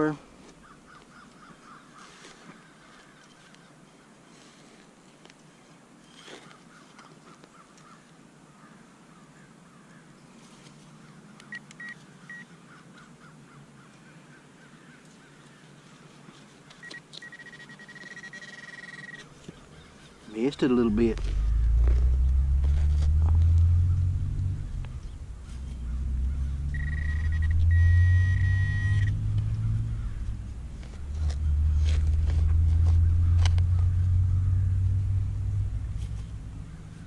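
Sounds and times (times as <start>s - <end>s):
faint bird calls: 0.0s - 4.7s, 6.1s - 22.7s, 23.6s - 31.7s
pinpointer short beeps: 16.8s - 19.2s, 26.7s - 29.2s
steady pulsing beep: 16.8s - 19.2s, 26.7s - 29.2s
hand digger scraping soil: 30.8s - 33.6s.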